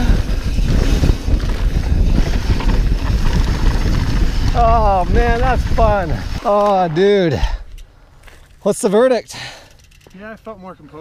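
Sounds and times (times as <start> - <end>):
wind buffeting microphone: 0.0 - 7.8
bike tyres rumbling on dirt: 0.0 - 8.4.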